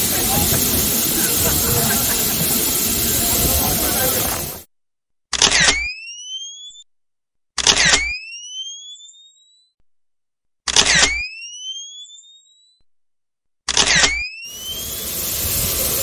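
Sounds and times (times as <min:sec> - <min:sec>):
flash recharging whine: 0:00.0 - 0:04.6, 0:14.5 - 0:16.0
camera shutter click: 0:05.3 - 0:05.8, 0:13.7 - 0:14.2.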